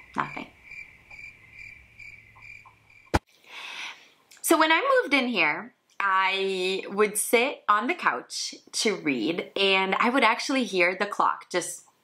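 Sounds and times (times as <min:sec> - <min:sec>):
crickets chirping: 0:00.0 - 0:03.2.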